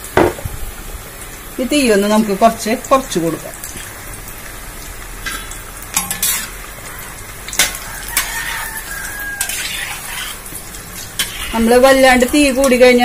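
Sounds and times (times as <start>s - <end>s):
food sizzling in hot oil: 0.0s - 13.0s
metal spoon scraping pan: 5.2s - 6.6s, 7.5s - 12.9s.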